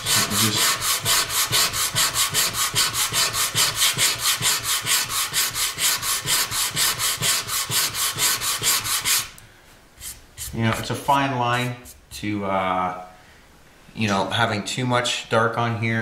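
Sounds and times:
sandpaper rubbing on wood: 0.0 - 9.4.

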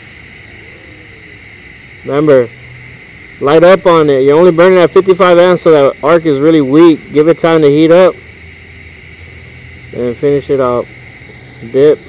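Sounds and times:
welding arc hissing: 0.0 - 12.0.

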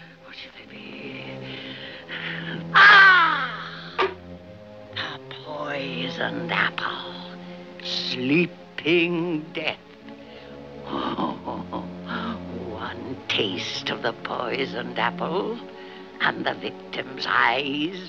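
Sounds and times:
dramatic orchestral music: 0.0 - 18.0
raven squawking: 2.2 - 4.2.

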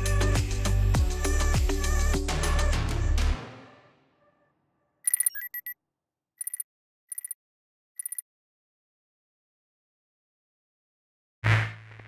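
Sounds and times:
rapid digital beeps: 5.1 - 5.8.

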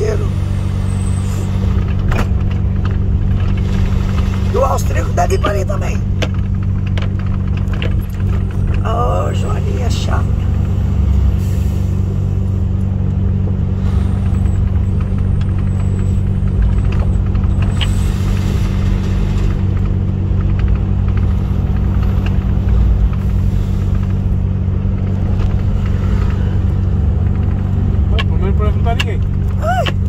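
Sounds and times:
diesel truck engine droning: 0.0 - 30.0.

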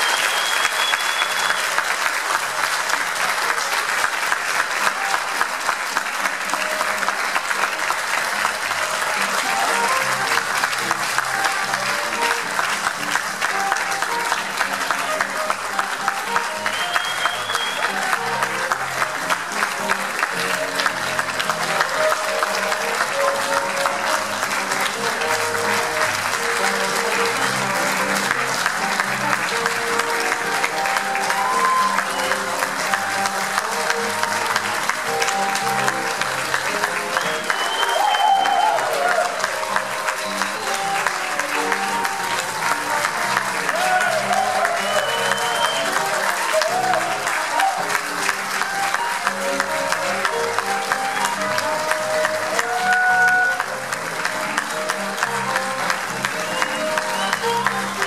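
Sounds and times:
short high whistle: 0.0 - 1.7, 16.7 - 17.8, 37.5 - 38.6, 44.8 - 45.9
audience applauding: 0.0 - 58.0.

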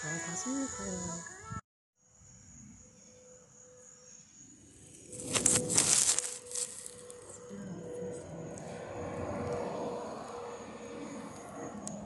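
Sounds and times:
high-pitched insect drone: 0.0 - 12.0
loud rustling: 5.1 - 7.0.

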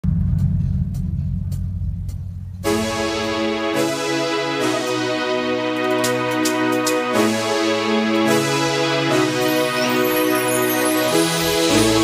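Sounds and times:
low bass rumble: 0.0 - 3.6.

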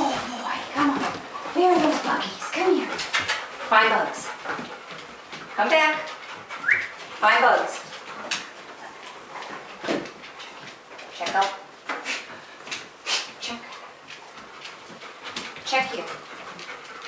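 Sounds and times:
footsteps on hardwood floor: 0.0 - 11.6.

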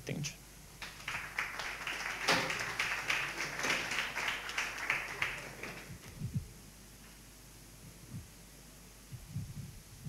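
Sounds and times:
audience applauding: 0.8 - 6.0.

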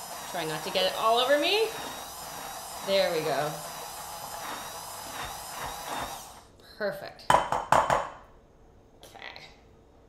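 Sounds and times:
immersion blender whining: 0.0 - 6.6.

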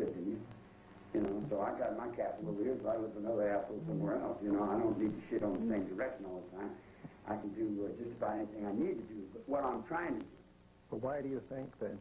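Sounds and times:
man speaking: 1.2 - 12.0.

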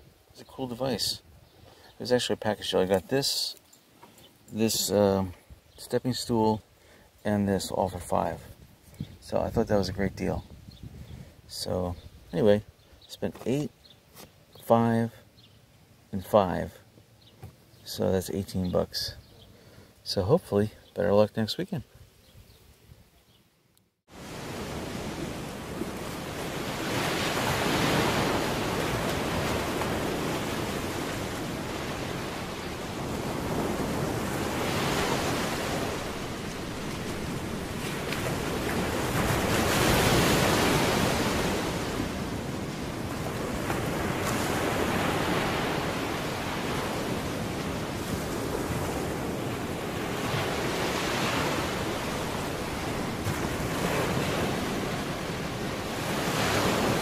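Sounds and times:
ocean waves breaking: 24.1 - 57.0.

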